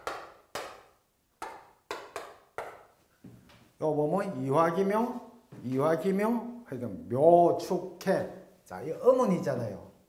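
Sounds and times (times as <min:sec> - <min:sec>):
chalk tapping on chalkboard: 0:00.0 - 0:02.8.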